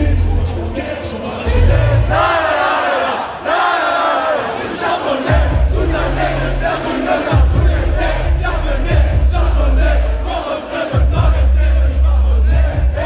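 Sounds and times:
heavy bass beat: 0.0s - 0.8s, 1.5s - 2.2s, 5.3s - 13.0s
crowd shouting lyrics together: 0.1s - 13.0s.

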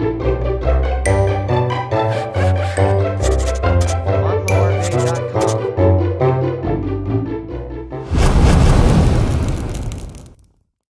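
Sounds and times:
deep explosion blast: 8.1s - 10.4s.

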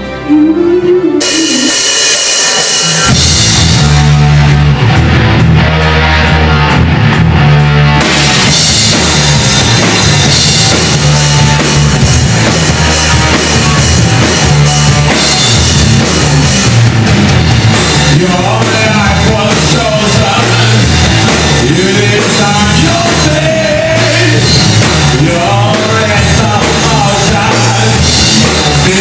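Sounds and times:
distorted guitar and bass riff: 0.0s - 29.0s
hard rock band playing: 0.0s - 29.0s
drums and cymbals crashing: 1.2s - 29.0s.

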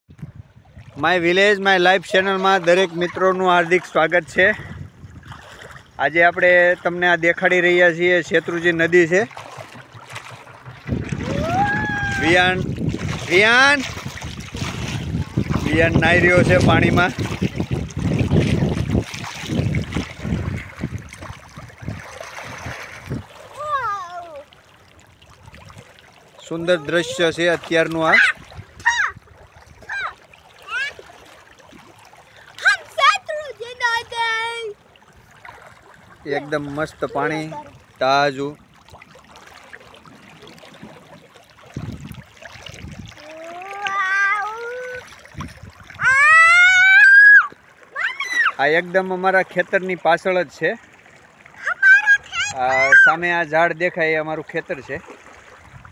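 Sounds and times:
children splashing in water: 0.8s - 55.9s
person squealing: 11.2s - 12.5s, 28.1s - 29.2s, 46.0s - 48.6s.

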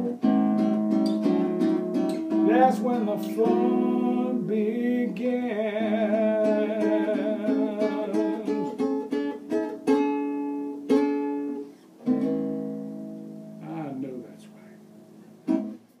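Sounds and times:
acoustic guitar playing blues: 0.0s - 16.0s.

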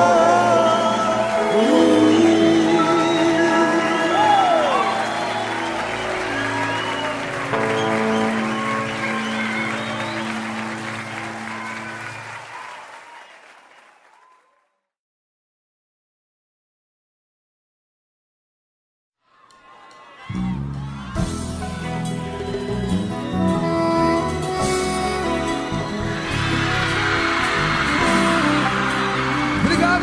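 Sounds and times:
person singing: 0.0s - 5.7s
band playing final chords: 0.0s - 12.3s, 21.2s - 30.0s
audience applause: 0.0s - 14.7s, 25.9s - 30.0s.

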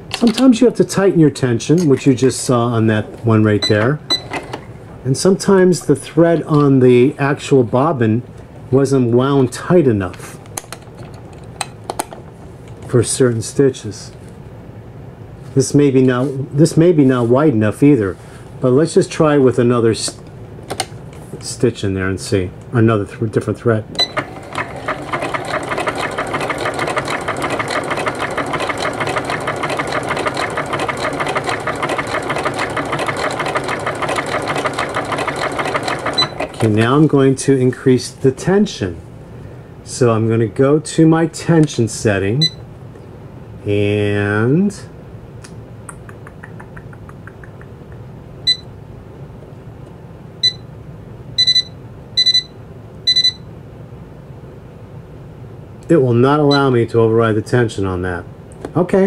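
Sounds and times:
sewing machine stitching: 24.0s - 37.0s
faint clicks: 45.4s - 48.0s.

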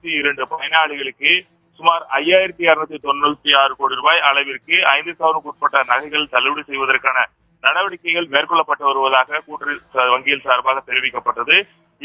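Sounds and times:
person talking quickly: 0.0s - 11.6s.

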